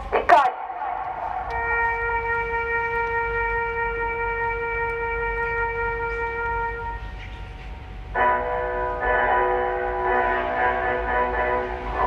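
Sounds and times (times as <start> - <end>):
long steady horn note: 1.5 - 12.0.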